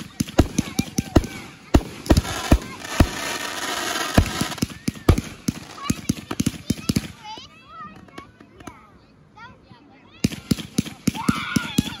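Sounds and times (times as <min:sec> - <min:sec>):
crackling firework pops: 0:00.0 - 0:07.2
fireworks bangs: 0:00.0 - 0:07.2.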